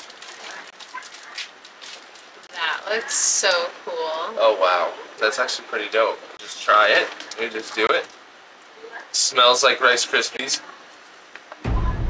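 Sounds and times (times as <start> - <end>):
plastic snack package crinkling: 0.0 - 2.8.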